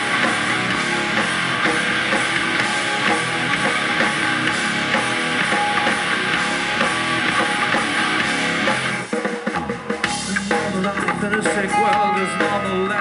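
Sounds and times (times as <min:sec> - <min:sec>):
metal band playing loud: 0:00.0 - 0:13.0.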